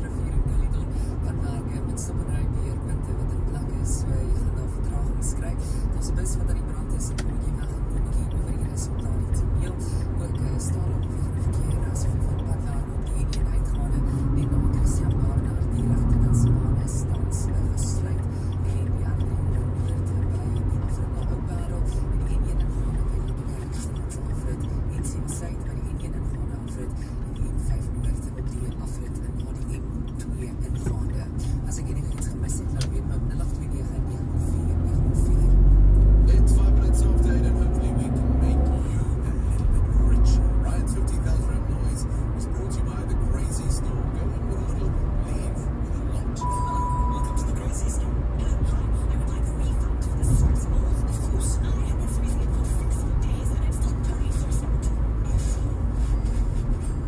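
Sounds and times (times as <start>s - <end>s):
car engine and tyre noise: 0.0s - 57.0s
car radio playing faintly: 0.0s - 57.0s.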